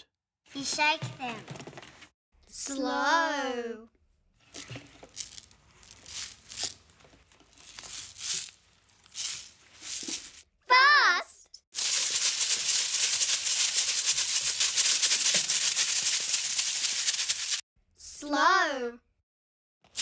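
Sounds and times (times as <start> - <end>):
rice shakers rattling: 4.9 - 10.4, 11.8 - 17.6.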